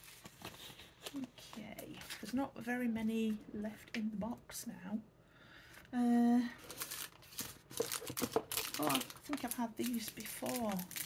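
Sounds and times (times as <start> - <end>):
woman speaking: 1.1 - 5.1, 5.9 - 6.6, 8.7 - 11.0
snack packaging crinkling: 6.6 - 11.0.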